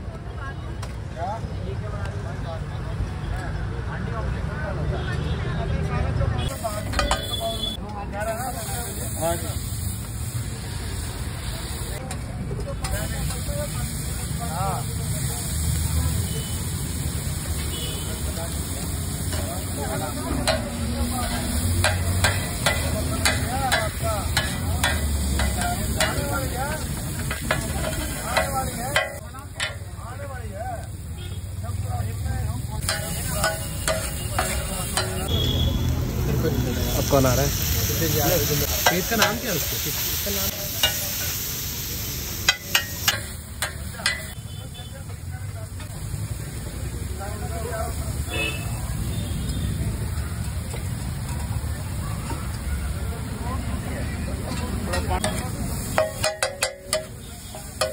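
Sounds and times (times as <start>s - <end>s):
metal spatula scraping on griddle: 6.5s - 7.7s, 19.2s - 29.9s, 32.8s - 35.5s, 37.2s - 44.5s, 54.5s - 57.9s
omelette sizzling on griddle: 6.5s - 53.0s
spatula scraping metal griddle: 32.8s - 35.2s.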